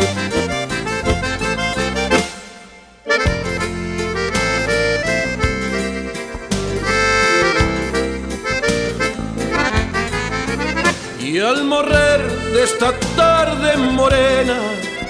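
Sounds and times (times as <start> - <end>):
accordion melody: 0.0 - 15.0
strummed acoustic guitar: 0.0 - 15.0.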